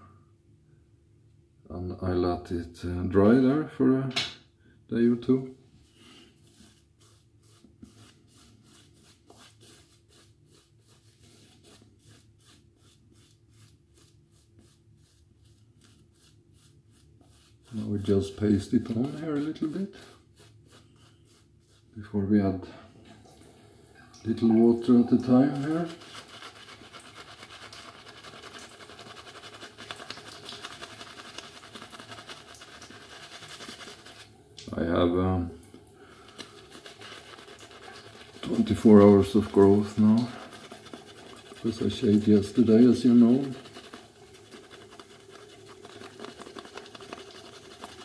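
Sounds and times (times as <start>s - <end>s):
shaving brush swishing on face: 6.0s - 22.1s, 24.6s - 34.3s, 36.1s - 48.0s.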